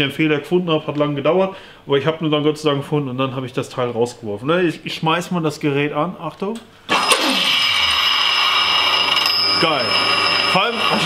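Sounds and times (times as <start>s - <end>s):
polishing machine motor whining: 6.9s - 11.0s.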